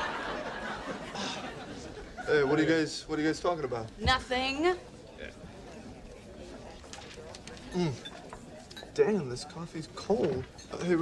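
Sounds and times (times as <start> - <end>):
faint low room murmur: 0.0 - 11.0.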